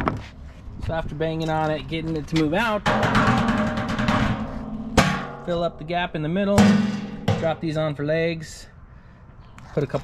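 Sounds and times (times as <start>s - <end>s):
hand rubbing metal drum: 2.9s - 5.4s
washing machine drum resonating: 2.9s - 5.8s, 6.6s - 7.6s
sharp metallic knock: 2.9s - 5.9s, 6.6s - 7.6s.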